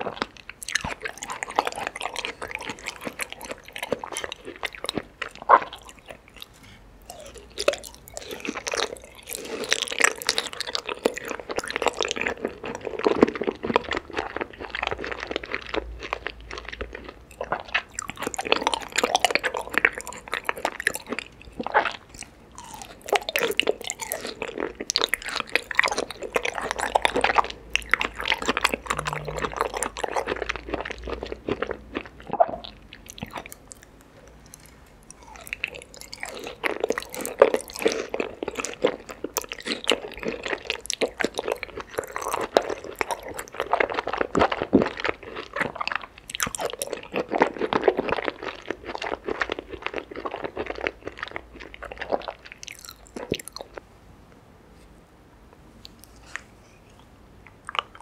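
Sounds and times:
wet chewing mouth sounds: 0:00.0 - 0:53.8.

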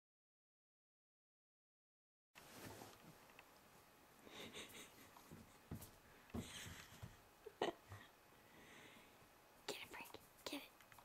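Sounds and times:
faint whispering voice: 0:09.6 - 0:10.8.

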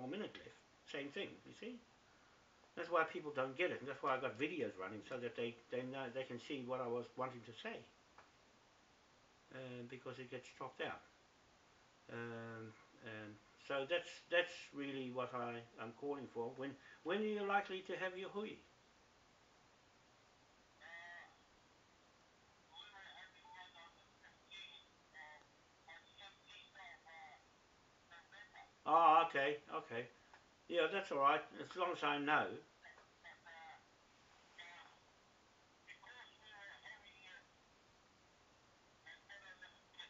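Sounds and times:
faint voice over phone line: 0:20.8 - 0:21.4, 0:22.7 - 0:27.5, 0:28.1 - 0:29.1, 0:32.6 - 0:33.9, 0:34.5 - 0:35.0, 0:35.9 - 0:37.5, 0:39.0 - 0:40.0.

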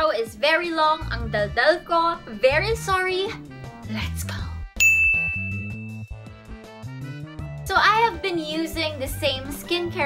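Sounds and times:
background music with bass line: 0:01.0 - 0:10.0
bright chime ding: 0:04.8 - 0:06.3.

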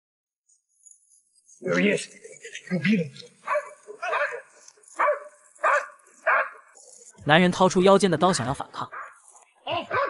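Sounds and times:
dog barking: 0:03.4 - 0:06.8, 0:08.9 - 0:10.0.

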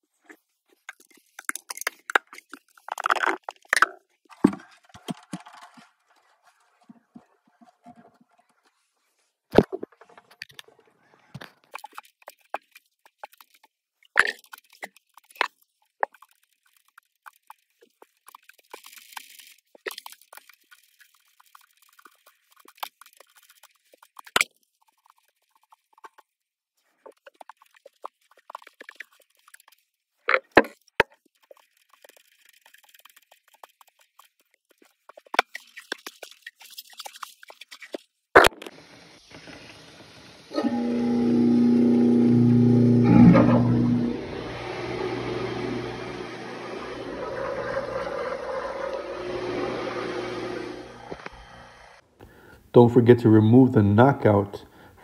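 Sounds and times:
plastic fittings clicking and scraping: 0:00.3 - 0:38.8.

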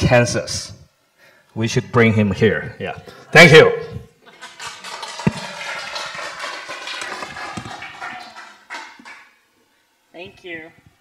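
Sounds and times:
audience applauding: 0:04.3 - 0:09.4.

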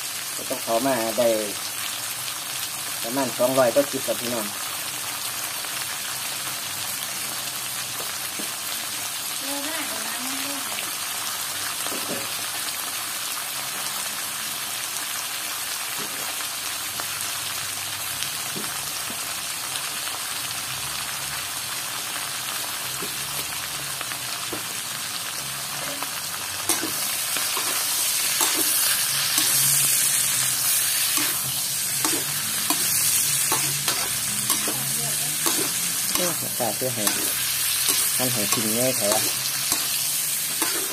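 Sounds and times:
meat sizzling in a wok: 0:00.0 - 0:40.9
metal spatula scraping a wok: 0:26.7 - 0:40.9.

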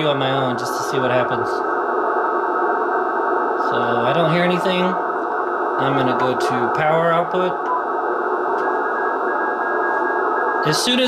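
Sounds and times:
radio static hiss: 0:00.0 - 0:11.0.

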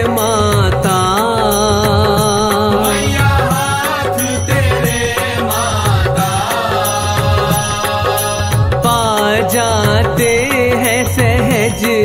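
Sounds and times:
steady repeating drum beat: 0:00.0 - 0:12.0.

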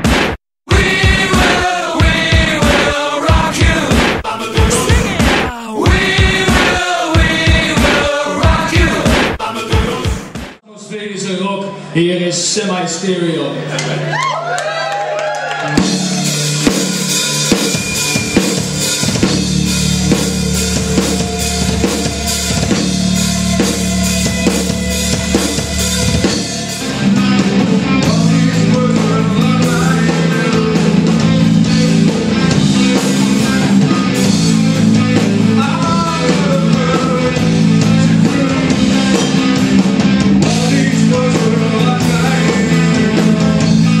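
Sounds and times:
live rock band playing: 0:00.0 - 0:10.4, 0:15.6 - 0:44.0
drum kit: 0:00.0 - 0:10.6, 0:15.6 - 0:44.0.

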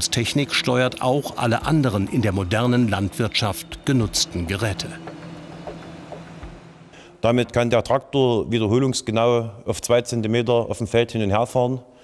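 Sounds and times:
tractor engine drone: 0:00.0 - 0:07.6.

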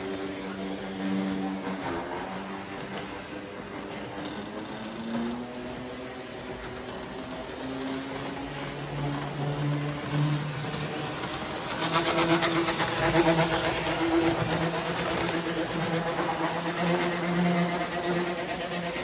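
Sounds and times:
rapid clicking of train: 0:00.0 - 0:19.0
train wheels rolling on track: 0:00.0 - 0:19.0.

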